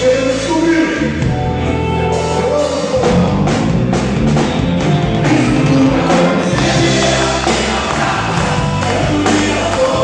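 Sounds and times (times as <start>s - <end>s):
crowd singing along: 5.0s - 10.0s
percussion: 5.3s - 10.0s.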